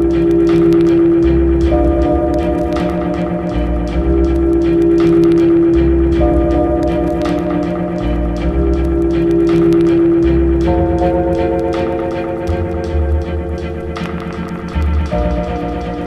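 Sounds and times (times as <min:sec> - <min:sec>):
bass line: 0:00.0 - 0:16.0
light ticking percussion: 0:00.0 - 0:16.0
sustained chords: 0:00.0 - 0:16.0.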